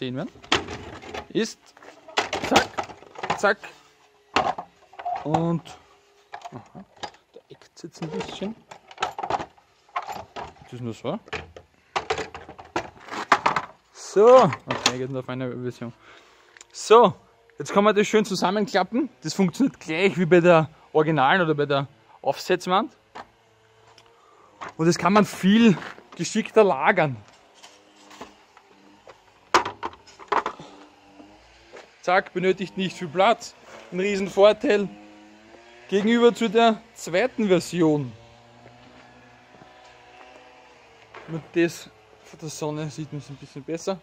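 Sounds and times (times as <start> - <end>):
wooden boards knocking and clattering: 0.4 - 1.3, 2.1 - 3.4, 4.4 - 5.3, 8.1 - 10.6, 11.3 - 13.8, 29.5 - 30.6.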